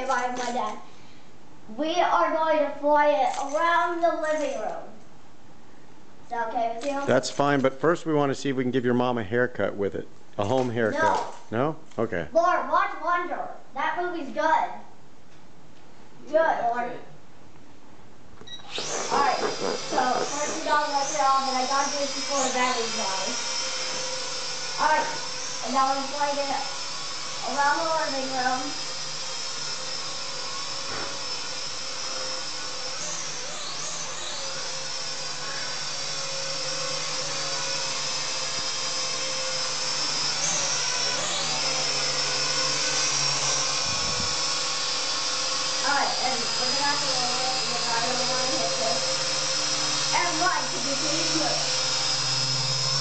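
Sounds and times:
toy drone motors whining: 0.0 - 0.8, 3.2 - 4.8, 18.6 - 53.0.

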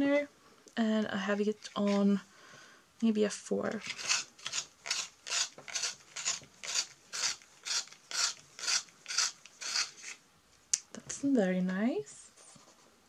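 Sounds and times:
pencil sharpener rasping: 3.7 - 10.2.

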